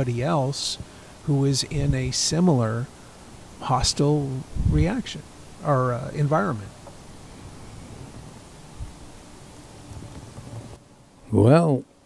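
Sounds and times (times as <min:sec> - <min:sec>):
steady rushing noise: 0:00.0 - 0:10.8.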